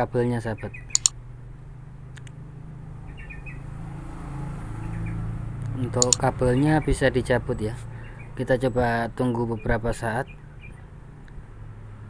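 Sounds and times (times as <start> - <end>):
small bird chirping: 0.5 - 1.1, 3.0 - 3.7, 9.6 - 10.9.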